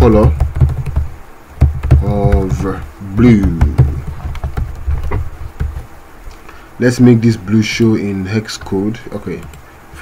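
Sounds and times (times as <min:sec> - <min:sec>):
keyboard and mouse clicks: 0:00.0 - 0:02.8, 0:03.4 - 0:05.9, 0:08.6 - 0:10.0
steady low hum: 0:00.0 - 0:10.0.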